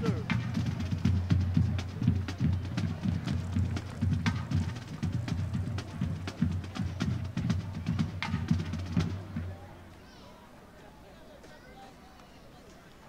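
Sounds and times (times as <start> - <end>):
marching band drums: 0.0 - 9.8.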